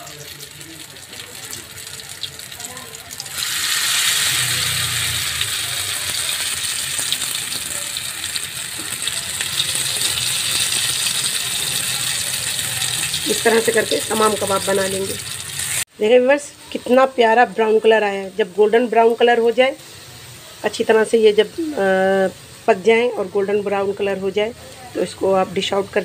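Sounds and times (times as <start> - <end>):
faint oil crackle: 0.0 - 15.9
batter sizzling in hot oil: 0.0 - 26.0.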